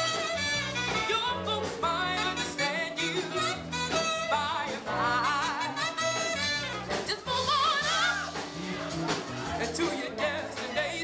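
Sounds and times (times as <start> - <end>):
saxophone lead with vibrato: 0.0 - 9.0
bass line: 0.0 - 11.0
drums: 0.0 - 11.0.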